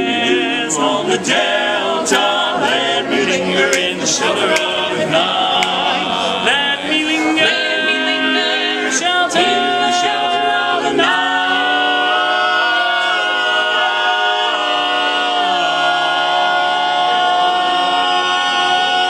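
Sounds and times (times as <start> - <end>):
male quartet singing a cappella: 0.0 - 19.0.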